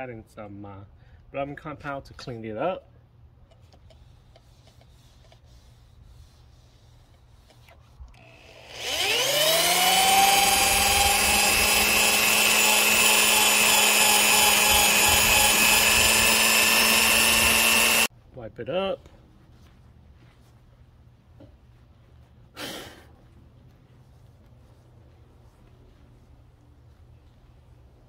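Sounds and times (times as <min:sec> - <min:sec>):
drill buffing pad whining: 0:08.2 - 0:18.1.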